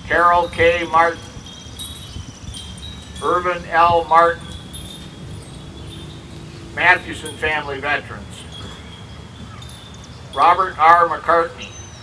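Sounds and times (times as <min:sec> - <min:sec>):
wind chimes ringing: 0:00.0 - 0:12.0
low rumble: 0:02.6 - 0:09.1.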